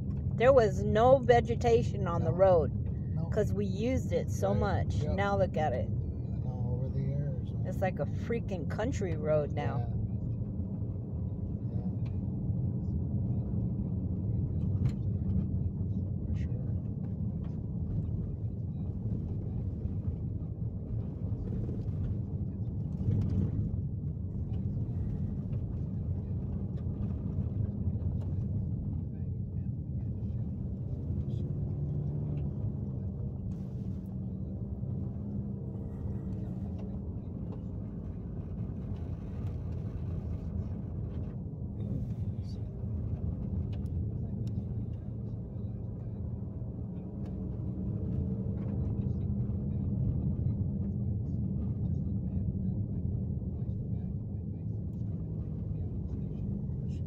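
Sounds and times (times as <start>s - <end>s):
engine and tyre rumble: 0.0s - 57.0s.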